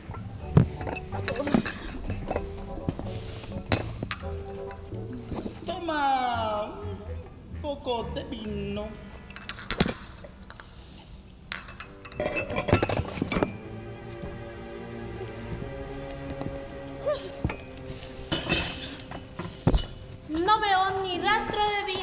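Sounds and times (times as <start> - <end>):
background music with held tones: 0.0 - 22.0
teacups and plates clinking: 0.1 - 5.8
person speaking: 5.4 - 9.3.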